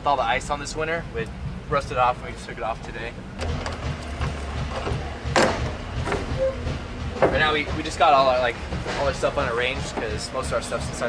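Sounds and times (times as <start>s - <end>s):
low rumble: 0.8s - 10.7s
latch clanking: 3.4s - 7.6s.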